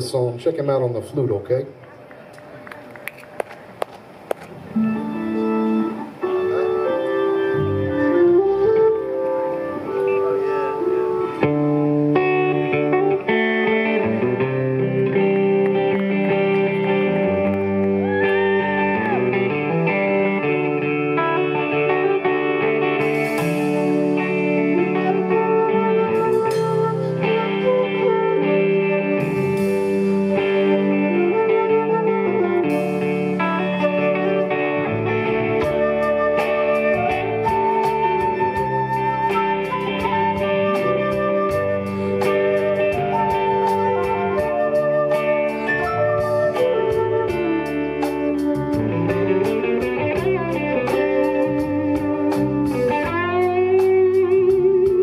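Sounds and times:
live band playing: 0.0 - 55.0
flute playing: 4.6 - 55.0.

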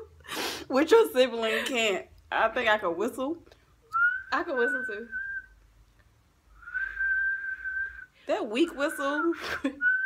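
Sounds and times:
person whistling a high note: 6.6 - 8.1.

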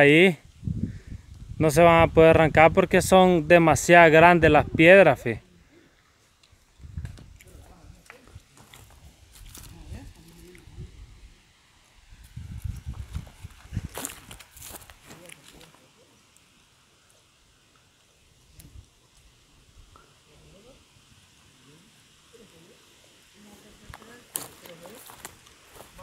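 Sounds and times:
microphone handling noise: 6.8 - 7.7, 12.3 - 14.4
footsteps on dry dirt and grass: 7.2 - 9.8, 12.2 - 15.6, 23.9 - 26.0.

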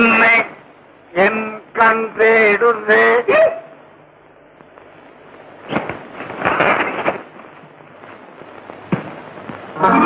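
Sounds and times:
sharp crackling bursts: 0.0 - 10.0.

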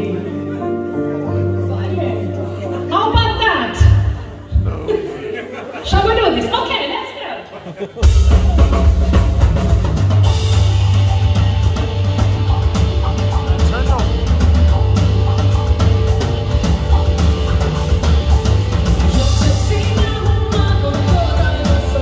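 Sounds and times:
keyboards: 0.0 - 22.0
driving drum beat: 8.0 - 22.0
heavy bass line: 8.0 - 22.0.

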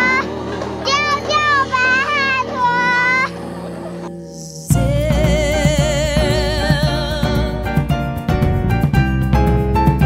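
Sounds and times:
children calling out: 0.0 - 4.1
loud recorded music: 0.0 - 10.0
low steady music: 0.0 - 10.0.

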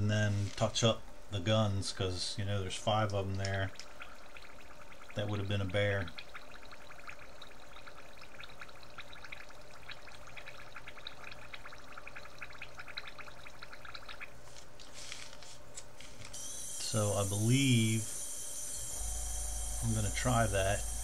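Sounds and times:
fine crackle of liquid drips: 2.0 - 17.0.

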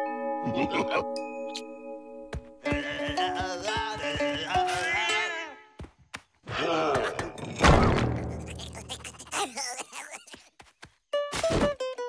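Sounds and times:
background music: 0.0 - 5.7
cartoon character groaning: 8.0 - 10.4.

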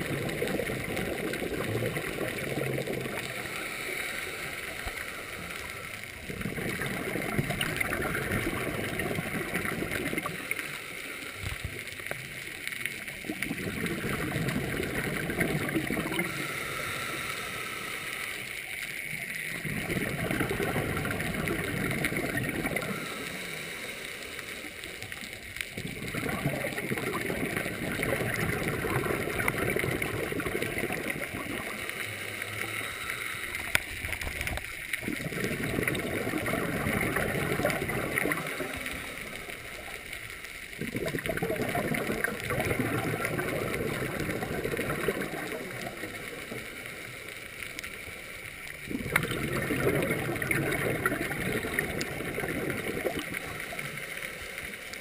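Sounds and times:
bubbly exhalations underwater: 0.0 - 17.4, 19.0 - 23.8, 24.7 - 47.9, 48.6 - 55.0
quiet inhalations through regulator: 0.0 - 55.0.

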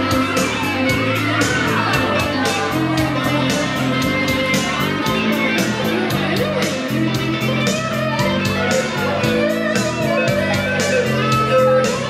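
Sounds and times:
bass notes: 0.0 - 12.0
electric guitar lead: 0.0 - 12.0
regular drum beat: 0.0 - 12.0.

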